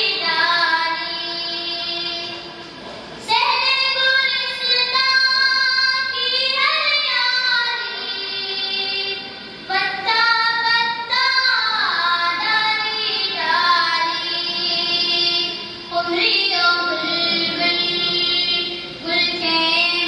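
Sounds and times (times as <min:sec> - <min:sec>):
boy singing unaccompanied: 0:00.0 - 0:02.5, 0:03.2 - 0:20.0.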